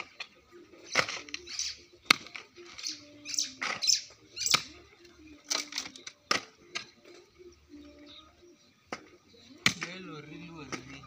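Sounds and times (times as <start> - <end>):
hoe and shovel chopping soil: 0.0 - 4.8, 5.4 - 7.0, 8.9 - 11.0.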